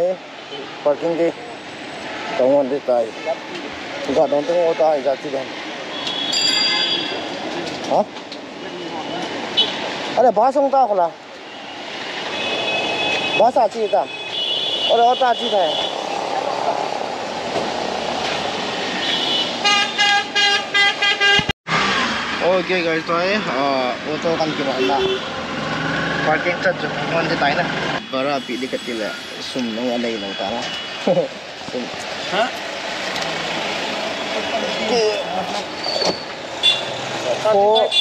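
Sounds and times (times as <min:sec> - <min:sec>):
busy street traffic: 0:00.0 - 0:38.0
vehicle horn beeping: 0:05.9 - 0:07.2, 0:19.0 - 0:21.5, 0:28.0 - 0:31.1, 0:36.6 - 0:37.0, 0:37.8 - 0:38.0.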